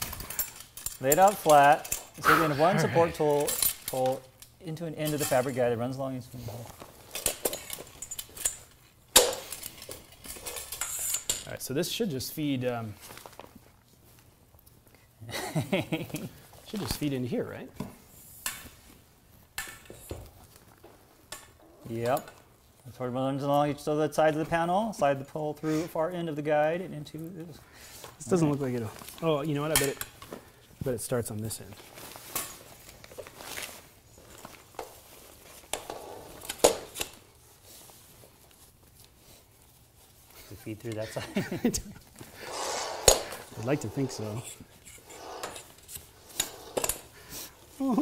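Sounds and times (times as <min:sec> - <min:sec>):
metal poles clicking and knocking: 0:00.0 - 0:02.2, 0:07.1 - 0:11.6
metal poles clinking and scraping: 0:00.0 - 0:11.7, 0:42.8 - 0:47.8
fabric rustling: 0:28.2 - 0:48.0.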